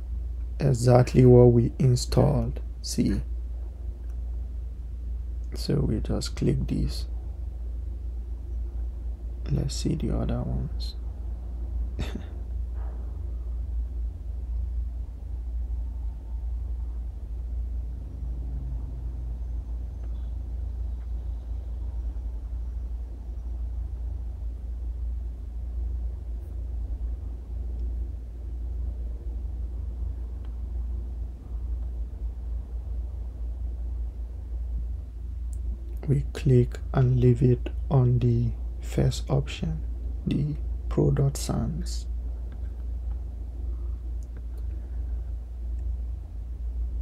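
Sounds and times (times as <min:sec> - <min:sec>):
steady low rumble: 0:00.0 - 0:47.0.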